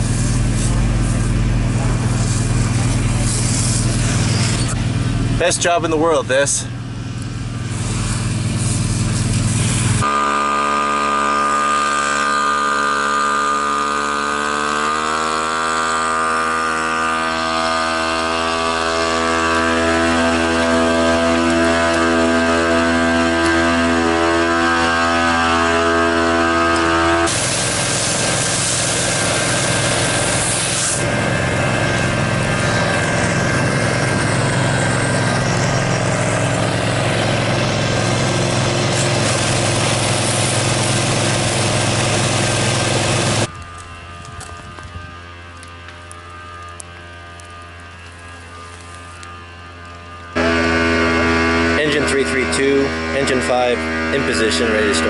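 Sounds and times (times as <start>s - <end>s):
loud hissing rush: 0.0s - 6.7s, 7.4s - 14.4s, 27.2s - 43.5s
engine hum: 0.0s - 55.0s.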